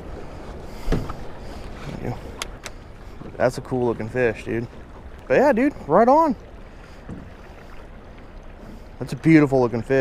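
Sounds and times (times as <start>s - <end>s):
river water: 0.0s - 10.0s
wind: 0.0s - 10.0s.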